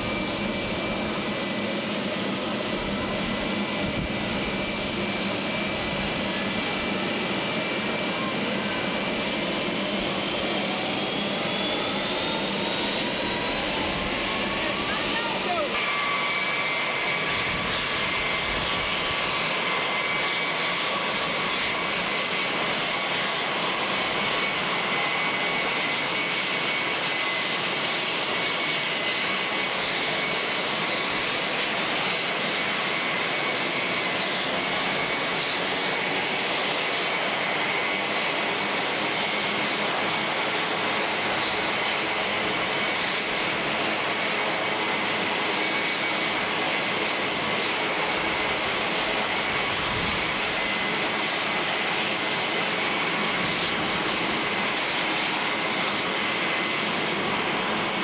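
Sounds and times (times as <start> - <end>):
jet engines running: 0.0 - 58.0.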